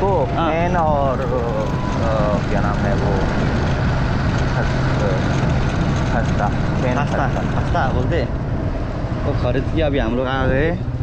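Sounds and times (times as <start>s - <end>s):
motorcycle engine hum: 0.0s - 11.0s
wind and road noise: 0.0s - 11.0s.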